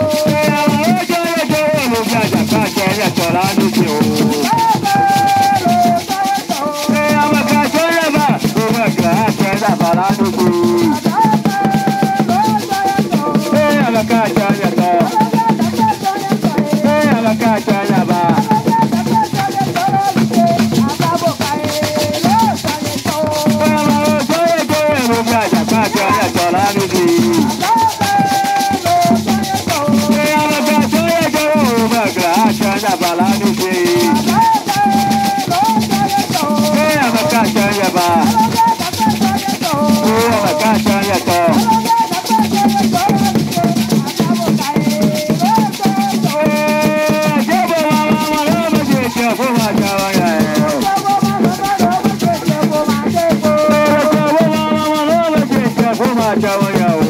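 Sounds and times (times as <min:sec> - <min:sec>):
gourd rattles shaking: 0:00.0 - 0:57.0
group singing: 0:00.0 - 0:57.0
hand drums: 0:00.0 - 0:57.0.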